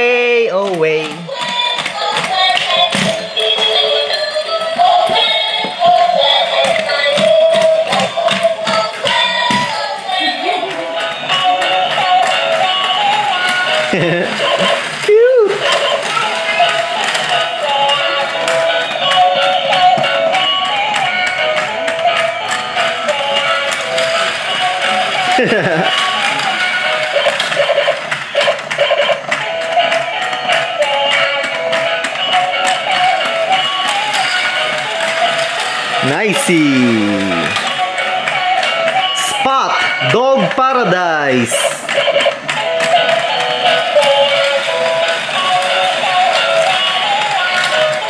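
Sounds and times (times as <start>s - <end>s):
tinny electronic toy tune: 1.4s - 14.8s.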